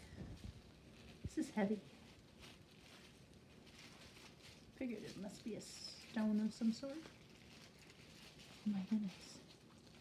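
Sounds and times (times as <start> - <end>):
cloth pouch rustling: 0.0 - 10.0.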